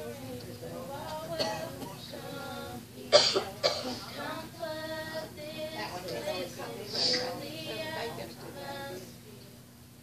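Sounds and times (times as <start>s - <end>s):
person coughing: 3.1s - 4.2s.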